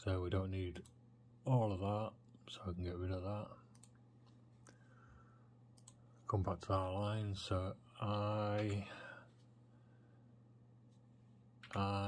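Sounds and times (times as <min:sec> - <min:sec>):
faint steady hum: 0:00.0 - 0:12.0
computer mouse clicks: 0:03.7 - 0:04.4, 0:05.8 - 0:06.0.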